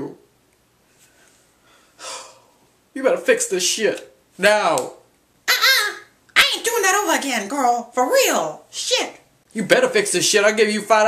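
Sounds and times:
person gasping: 1.6 - 2.6.

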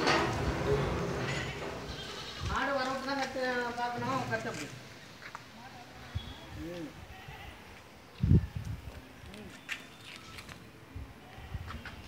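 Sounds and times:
goat bleating: 1.4 - 2.7.

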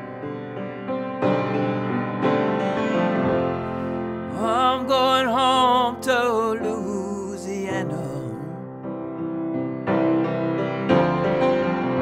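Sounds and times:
grand piano slow ballad: 0.0 - 12.0.

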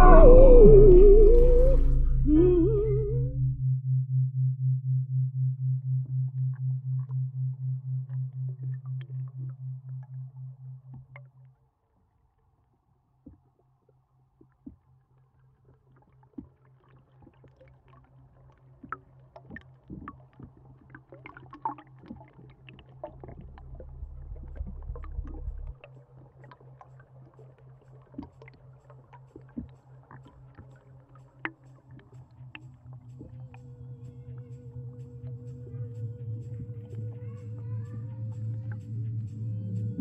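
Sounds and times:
wavering higher tone gliding: 0.0 - 3.8
deep rumble: 0.0 - 10.6, 23.1 - 25.8
faint low hum: 0.0 - 11.4, 22.8 - 29.2, 32.0 - 40.0
low pulsing electronic tone: 0.0 - 11.4, 23.1 - 25.8, 32.5 - 40.0.

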